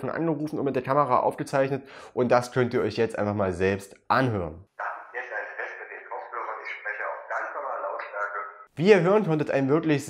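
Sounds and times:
voice over phone call: 0:04.8 - 0:08.7.

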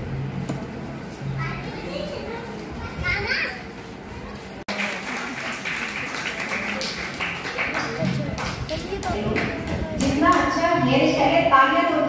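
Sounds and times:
audience chatter: 0:00.6 - 0:11.2
child-like voices: 0:01.4 - 0:04.3, 0:07.9 - 0:10.2.

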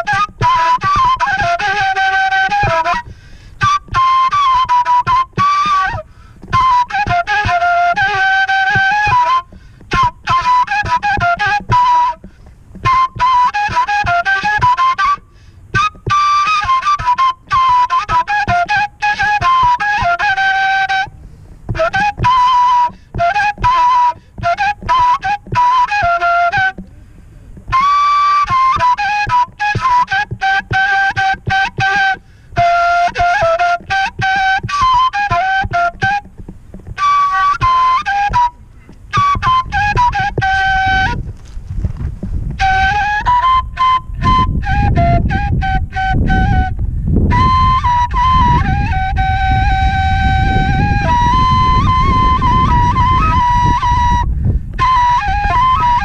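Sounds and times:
end-blown flute melody: 0:00.0 - 0:26.9, 0:27.6 - 0:41.6, 0:42.6 - 0:56.0.

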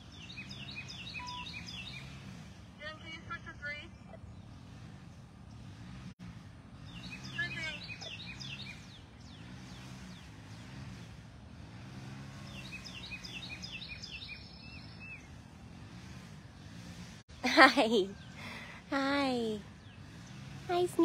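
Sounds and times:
birds chirping: 0:00.0 - 0:06.0, 0:06.7 - 0:15.7, 0:17.4 - 0:21.0.

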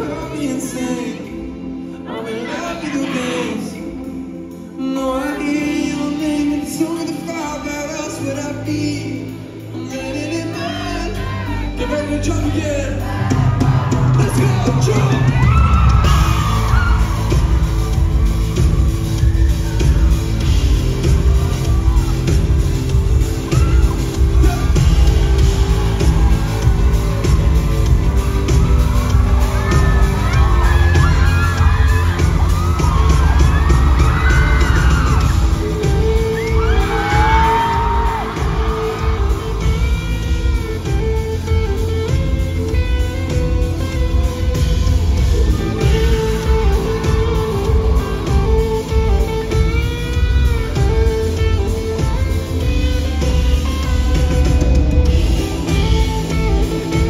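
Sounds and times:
live band playing pop-rock: 0:00.0 - 0:57.0.

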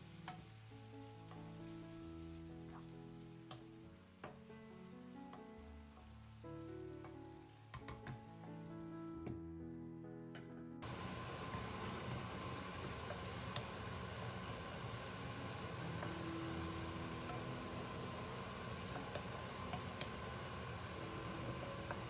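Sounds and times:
vegetables sizzling in a pan: 0:00.0 - 0:08.4, 0:10.8 - 0:22.0
background music: 0:00.0 - 0:13.0, 0:13.7 - 0:22.0.

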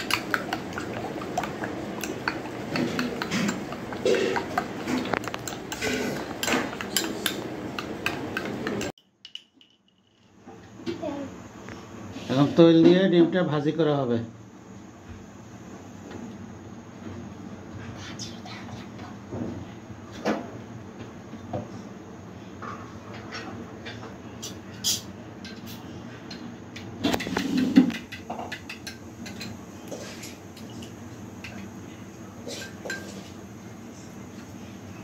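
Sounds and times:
low background hum: 0:00.0 - 0:35.0.

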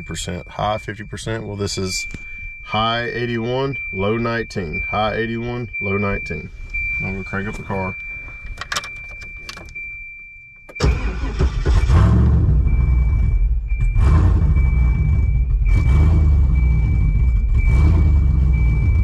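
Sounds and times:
thin steady high tone: 0:00.0 - 0:10.6
car engine starting and idling: 0:00.0 - 0:19.0.

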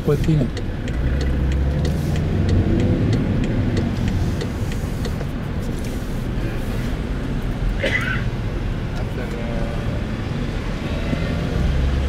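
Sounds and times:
light ticking: 0:00.0 - 0:06.0
car engine and road hum: 0:00.0 - 0:12.0.

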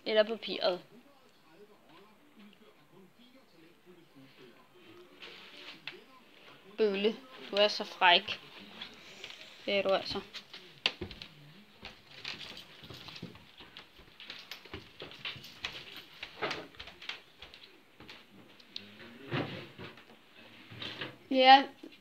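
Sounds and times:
puppy paws pattering on wood floor: 0:04.9 - 0:18.8.

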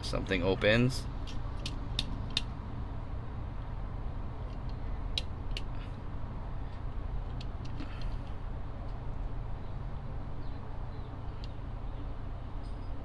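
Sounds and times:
steady low hum: 0:00.0 - 0:13.0
clicks of toy car parts: 0:04.5 - 0:05.7.

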